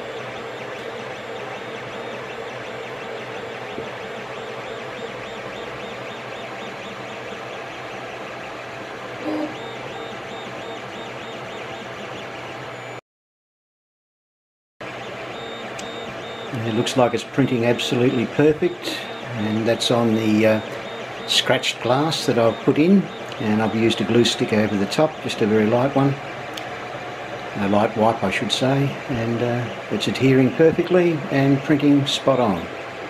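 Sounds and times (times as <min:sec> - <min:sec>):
print head shifting tones: 0:00.0 - 0:13.0, 0:14.8 - 0:33.0
printer fans and motors whirring: 0:00.0 - 0:13.0, 0:14.8 - 0:33.0.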